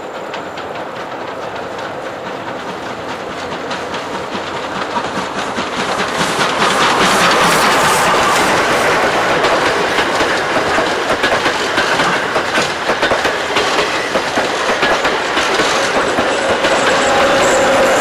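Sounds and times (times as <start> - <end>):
locomotive whine: 0.0 - 18.0
train wheels clicking over rail joints: 0.0 - 18.0.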